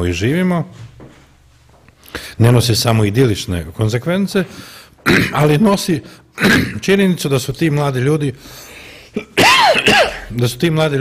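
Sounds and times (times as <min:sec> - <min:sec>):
man speaking: 0:00.0 - 0:00.8, 0:02.2 - 0:08.4, 0:10.0 - 0:11.0
man clearing his throat: 0:05.0 - 0:05.5, 0:06.4 - 0:06.9, 0:09.2 - 0:10.4.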